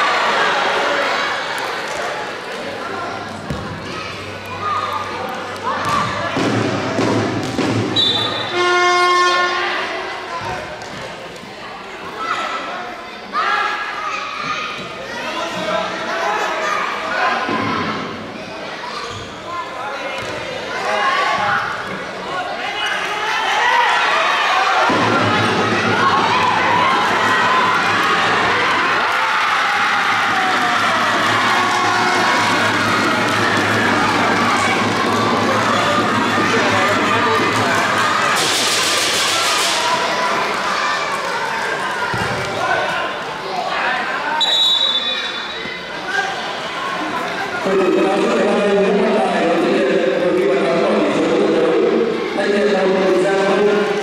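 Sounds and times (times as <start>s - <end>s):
voices shouting and echoing: 0.0s - 54.0s
loud horn note: 8.0s - 9.7s
spectators cheering: 22.7s - 48.4s.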